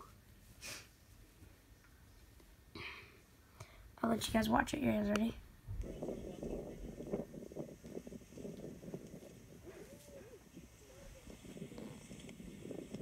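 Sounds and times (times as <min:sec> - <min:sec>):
low steady background noise: 0:00.0 - 0:13.0.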